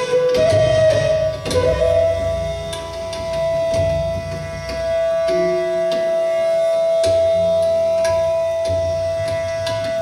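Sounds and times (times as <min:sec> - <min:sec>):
flute holding long note: 0:00.0 - 0:03.8.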